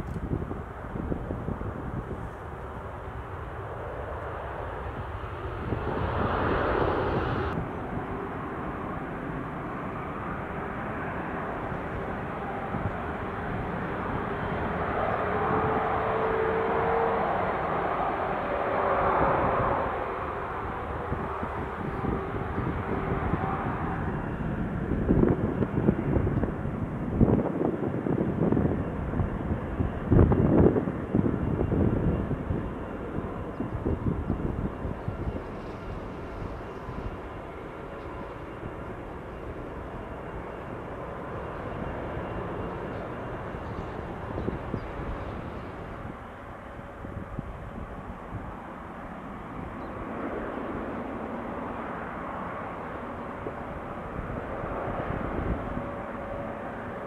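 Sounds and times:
jet engines running: 0:00.0 - 0:57.0
wind buffeting microphone: 0:00.0 - 0:57.0.

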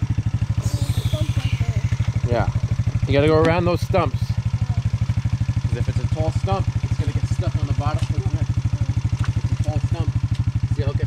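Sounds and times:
dirt bike engine idling: 0:00.0 - 0:11.0.

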